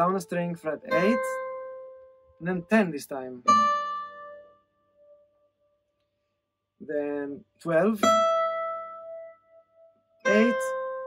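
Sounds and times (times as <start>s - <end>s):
acoustic guitar note: 10.2s - 11.0s.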